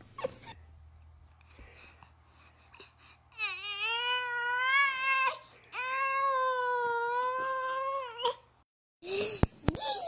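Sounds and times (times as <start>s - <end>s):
baby wailing: 3.3s - 8.5s.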